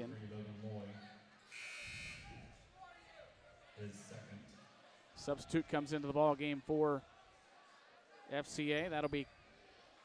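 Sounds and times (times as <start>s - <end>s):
scoreboard buzzer: 1.5s - 2.3s.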